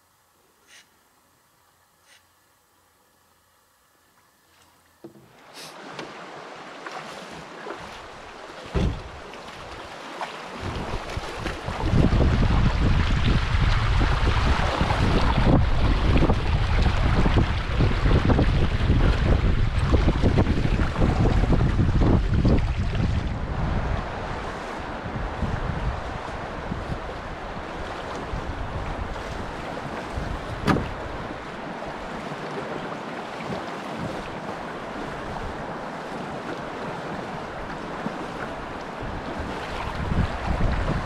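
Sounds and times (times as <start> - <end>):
river water rushing and splashing: 4.8 - 41.0
wind buffeting microphone: 8.6 - 9.2, 10.6 - 32.3, 34.0 - 41.0.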